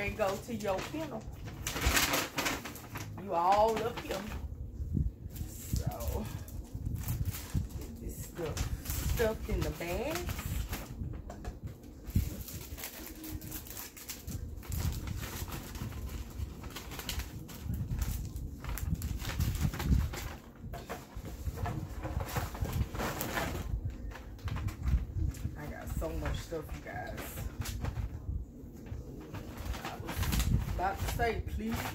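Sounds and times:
plastic and paper crinkling: 0.0s - 4.5s, 5.2s - 31.9s.

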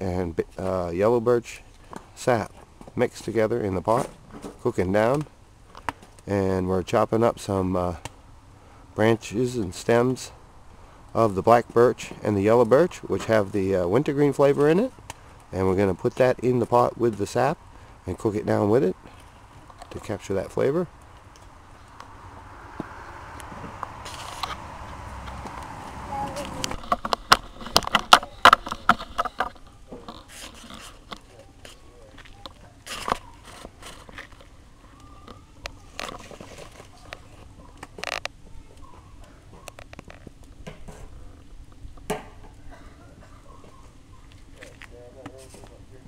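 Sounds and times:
firewood knocking and clattering: 26.6s - 31.3s, 42.0s - 42.6s.

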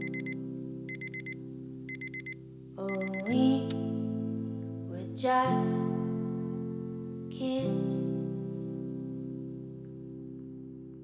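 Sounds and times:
alarm clock beeping: 0.0s - 3.3s.

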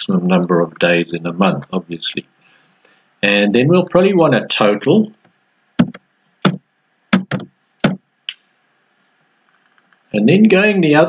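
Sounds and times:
keyboard keystrokes: 5.8s - 6.6s, 7.2s - 8.0s.

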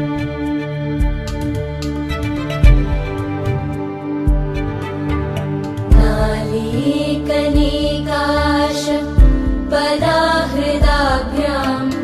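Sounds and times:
deep drum beats: 1.0s - 8.4s, 9.1s - 12.0s
steady held drone: 2.9s - 12.0s.

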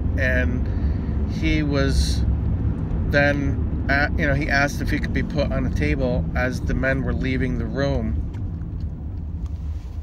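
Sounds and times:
car cabin engine and road rumble: 0.0s - 10.0s.

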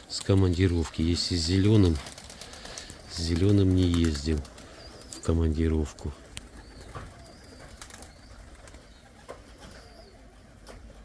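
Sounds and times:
pigeons calling softly: 0.0s - 11.0s.

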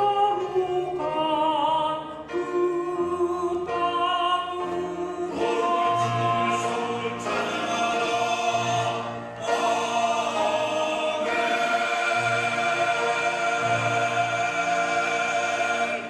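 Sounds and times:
men's choir singing in harmony: 0.0s - 16.0s.

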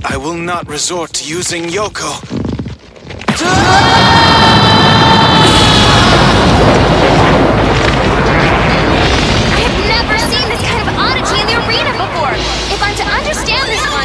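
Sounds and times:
heavy rumbling blast: 3.3s - 14.0s
long held shout: 3.4s - 6.6s.

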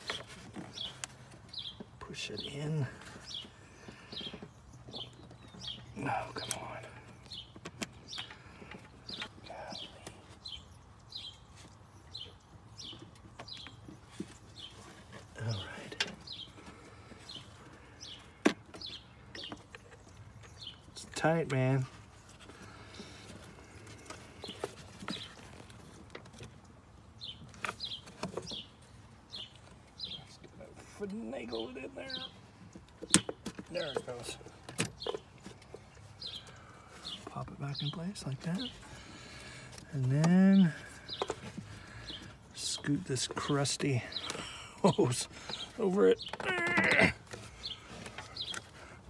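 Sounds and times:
rubber hose scraping: 44.9s - 49.0s.

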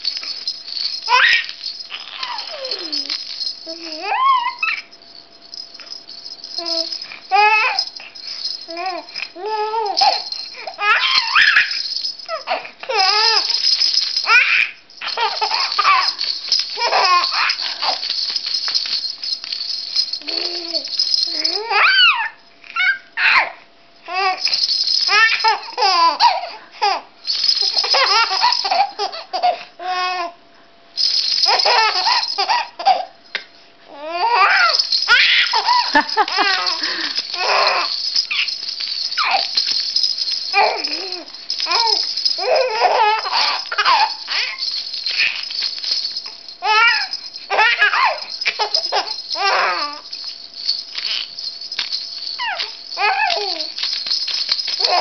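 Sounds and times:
toy rattle shaking: 0.0s - 29.7s, 31.0s - 55.0s
baby squealing: 1.1s - 3.1s, 3.7s - 4.9s, 6.6s - 7.8s, 8.7s - 13.6s, 14.2s - 16.1s, 16.8s - 18.0s, 20.2s - 24.4s, 34.0s - 38.5s, 39.2s - 39.6s, 40.5s - 45.4s, 46.6s - 50.1s, 51.1s - 51.3s, 52.4s - 53.8s, 54.8s - 55.0s
baby laughing: 16.8s - 18.0s, 40.6s - 44.6s, 46.6s - 50.0s.

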